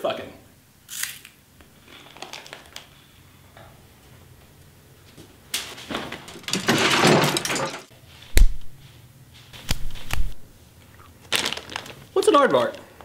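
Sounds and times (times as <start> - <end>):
rustling and clattering: 5.1 - 7.9.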